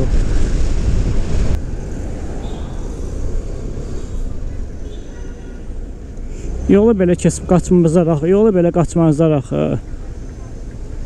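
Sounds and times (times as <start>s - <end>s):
road and traffic noise: 0.0s - 11.0s
scooter engine rumbling: 0.0s - 11.0s.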